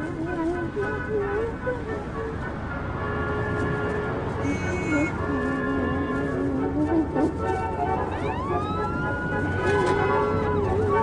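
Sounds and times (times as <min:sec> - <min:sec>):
high siren-like whine: 0:08.1 - 0:11.0.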